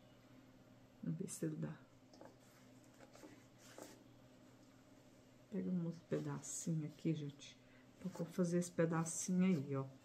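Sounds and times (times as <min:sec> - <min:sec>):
fabric rustling: 0:02.2 - 0:04.1.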